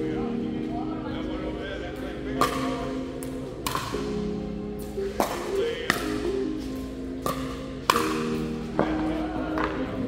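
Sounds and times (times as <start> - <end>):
background music: 0.0 - 10.0
paddles striking plastic ball: 3.6 - 4.1.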